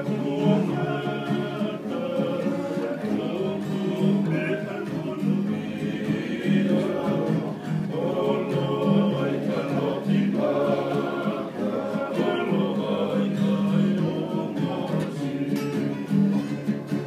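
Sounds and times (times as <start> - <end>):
men singing in harmony: 0.0 - 16.3
strummed acoustic guitars: 0.0 - 17.0.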